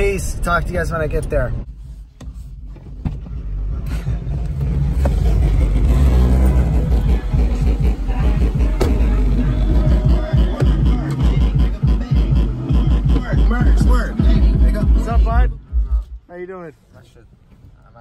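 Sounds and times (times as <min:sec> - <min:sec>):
loud music with heavy bass: 0:04.6 - 0:16.2.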